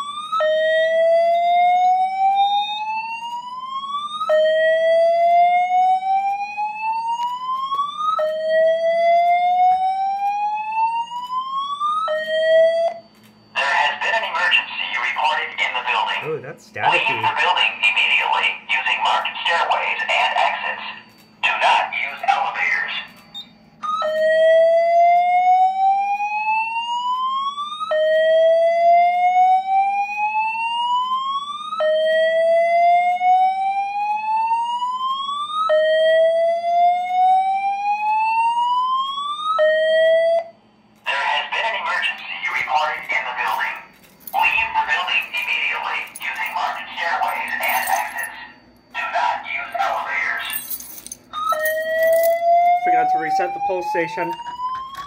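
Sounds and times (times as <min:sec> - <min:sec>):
fire alarm whoop tone: 0:00.0 - 0:17.5, 0:19.4 - 0:40.8, 0:45.8 - 0:55.0
static: 0:13.6 - 0:23.0, 0:41.1 - 0:43.8
recorded voice message: 0:13.6 - 0:23.2, 0:41.1 - 0:50.8, 0:52.8 - 0:54.5.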